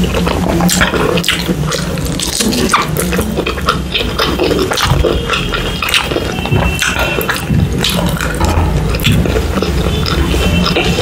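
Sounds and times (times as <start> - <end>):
sticky mouth clicks: 0.0 - 11.0
wet chewing and lip-smacking: 0.0 - 11.0.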